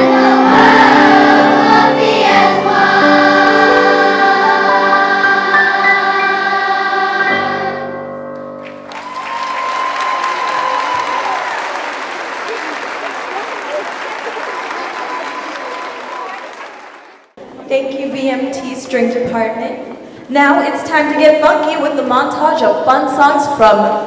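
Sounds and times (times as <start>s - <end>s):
children's choir singing: 0.0s - 8.0s
audience applause: 8.8s - 17.4s.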